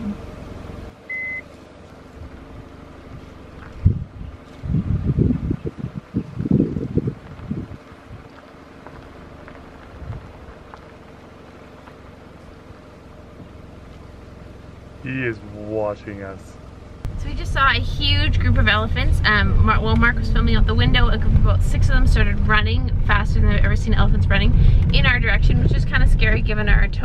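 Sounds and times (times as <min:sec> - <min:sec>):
car engine idling: 0:00.0 - 0:27.0
short high beep: 0:01.1 - 0:01.5
rough crackly bursts: 0:06.8 - 0:14.4.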